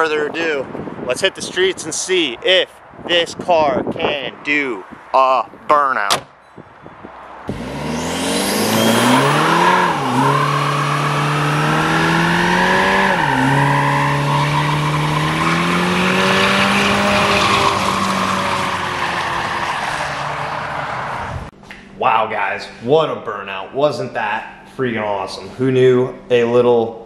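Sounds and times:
car engine revving high: 0:07.4 - 0:21.5
tyres squealing: 0:08.8 - 0:21.0.

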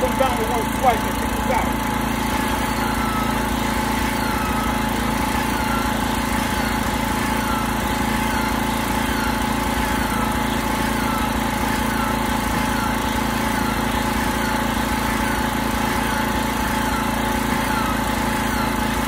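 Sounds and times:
motor hum: 0:00.0 - 0:19.0.

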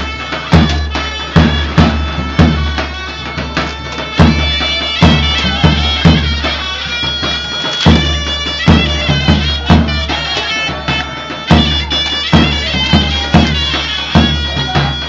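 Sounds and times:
large drum beating: 0:00.0 - 0:15.0
reed wind instrument melody: 0:00.0 - 0:15.0.

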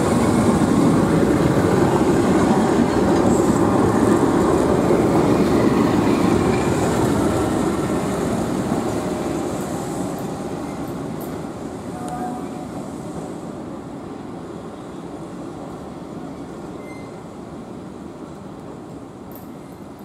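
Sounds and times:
train wheels rolling on rails: 0:00.0 - 0:20.0.

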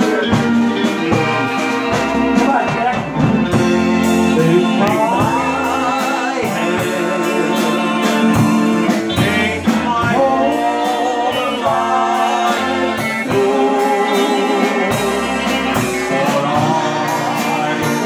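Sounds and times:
drum kit with cymbals: 0:00.0 - 0:18.0
electric guitar lines: 0:00.0 - 0:18.0.

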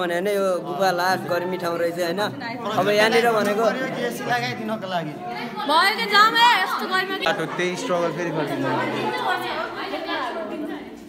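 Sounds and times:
people talking over one another: 0:00.0 - 0:11.0.

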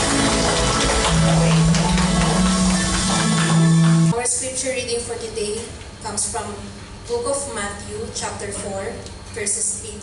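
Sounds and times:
acoustic guitar: 0:00.0 - 0:04.2
drum kit: 0:00.0 - 0:04.2.

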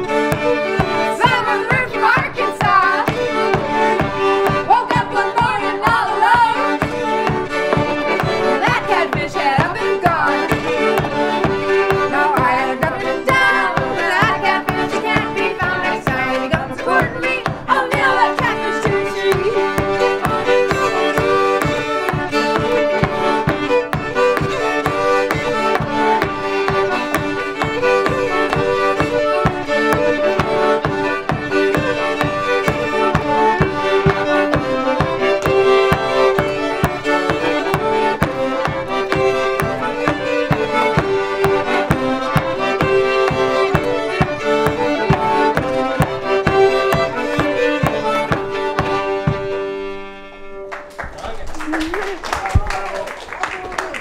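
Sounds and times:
steady beat: 0:00.0 - 0:49.8
button accordion: 0:00.0 - 0:50.8
fiddles: 0:00.0 - 0:50.9.

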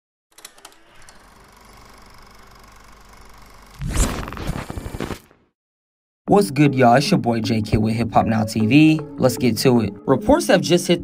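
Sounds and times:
static hiss: 0:03.8 - 0:05.2
glitchy clicks: 0:03.8 - 0:05.3.

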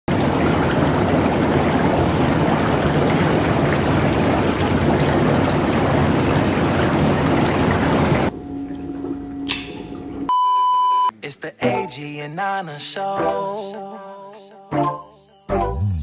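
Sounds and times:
water rushing in a bathtub: 0:00.1 - 0:10.3.

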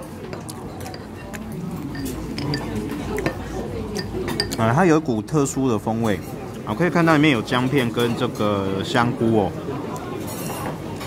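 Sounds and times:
murmur of restaurant chatter: 0:00.0 - 0:11.0
ceramic spoon clinking on clay pot: 0:00.3 - 0:04.8.

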